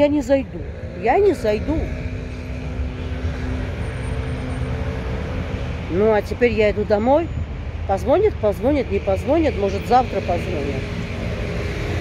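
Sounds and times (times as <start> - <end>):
low traffic rumble: 0.0 - 12.0
vehicle engine hum: 0.0 - 12.0.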